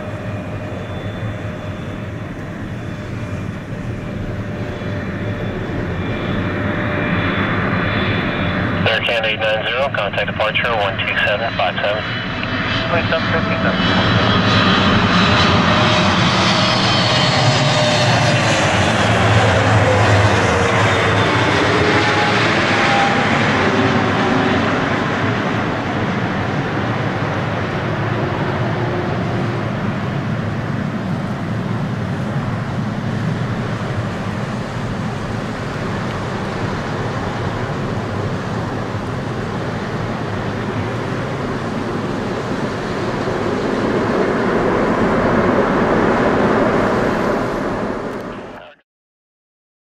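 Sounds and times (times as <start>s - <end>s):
jet engine roar: 0.0s - 48.8s
jet engines whining overhead: 0.0s - 48.8s.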